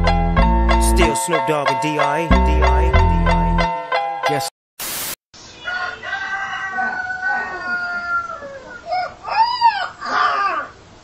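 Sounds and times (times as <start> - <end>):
rooster crowing: 5.6 - 10.7.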